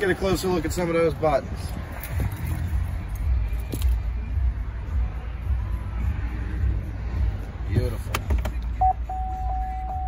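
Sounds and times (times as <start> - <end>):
faint car radio music: 0.0 - 10.0
wind rumble on microphone: 1.2 - 3.8.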